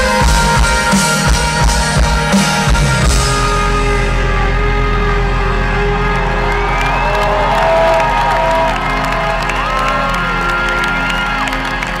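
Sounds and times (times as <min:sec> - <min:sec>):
rock band holding a chord: 0:00.0 - 0:12.0
crowd cheering and whooping: 0:05.7 - 0:12.0.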